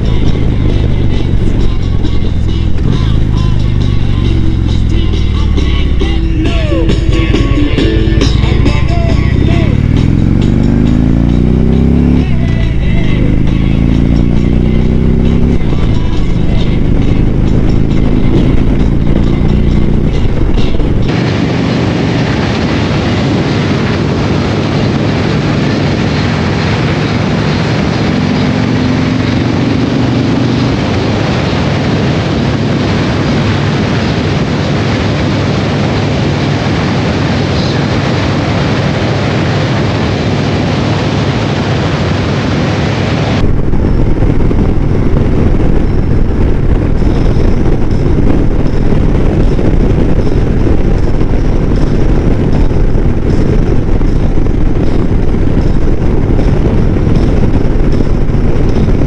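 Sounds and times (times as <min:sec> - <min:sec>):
motorcycle accelerating: 0:00.0 - 0:59.0
wind noise on microphone: 0:00.0 - 0:59.0.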